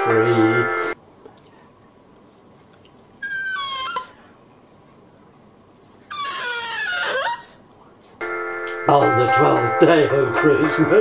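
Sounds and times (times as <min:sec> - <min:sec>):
dog whining: 0:03.2 - 0:04.2, 0:05.9 - 0:07.6.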